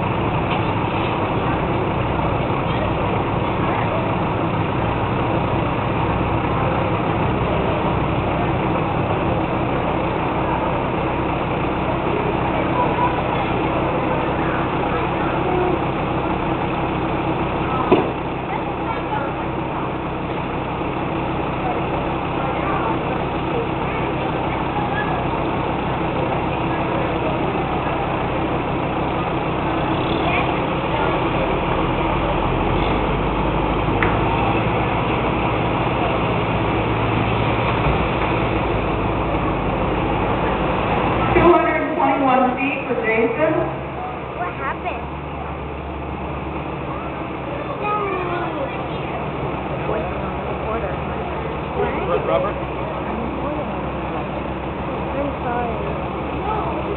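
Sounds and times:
people's voices: 0.0 - 56.9
truck engine idling: 0.0 - 56.9.

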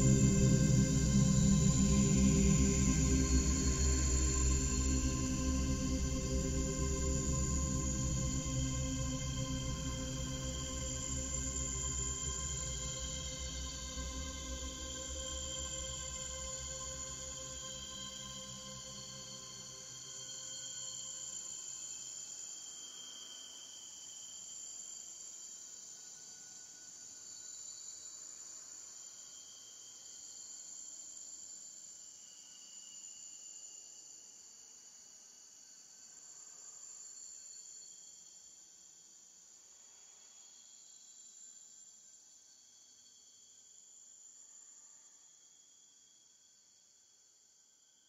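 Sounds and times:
crickets chirping chorus: 0.0 - 47.2.

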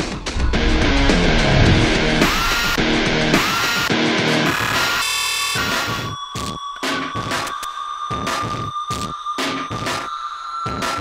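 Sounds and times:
pulsing hits: 0.0 - 4.7
heavy rock music: 0.0 - 5.0
steady high tone: 0.3 - 4.0
stuttering glitch: 0.6 - 5.0.

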